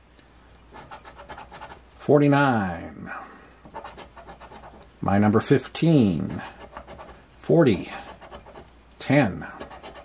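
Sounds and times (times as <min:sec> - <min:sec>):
token scraping scratch ticket: 0:00.7 - 0:01.8, 0:03.7 - 0:04.9, 0:06.1 - 0:07.2, 0:07.9 - 0:08.7, 0:09.6 - 0:10.0.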